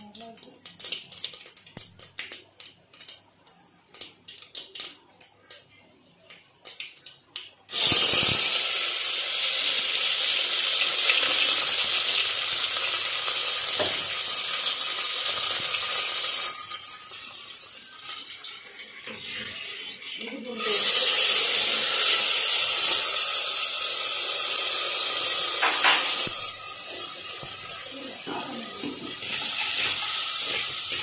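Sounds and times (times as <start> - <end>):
seeds popping in hot oil: 0.0 - 18.6, 20.8 - 31.0
leaves sizzling in oil: 7.7 - 31.0.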